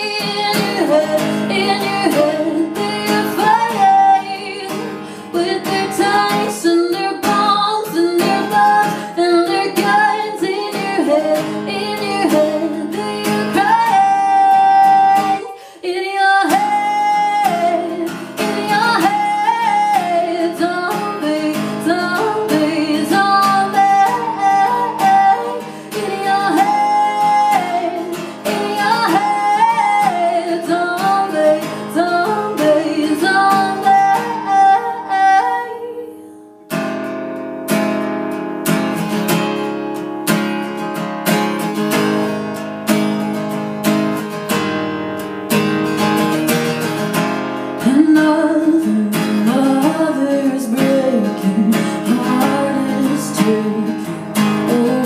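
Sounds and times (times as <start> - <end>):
woman singing: 0.0 - 36.6, 47.8 - 55.0
acoustic guitar strumming: 0.0 - 55.0.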